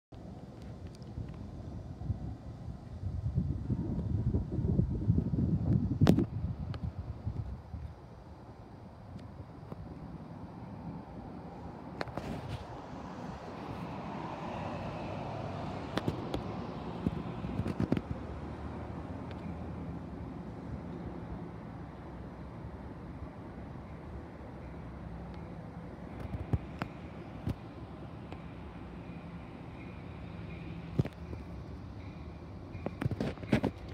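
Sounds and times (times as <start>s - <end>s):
distant diesel train rumble: 0.1s - 33.9s
wind noise on microphone: 0.4s - 10.0s, 10.8s - 18.5s, 32.8s - 33.9s.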